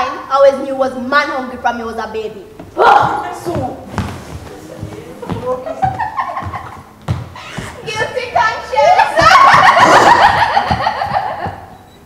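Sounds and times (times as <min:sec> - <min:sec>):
young actors speaking lines: 0:00.0 - 0:04.0.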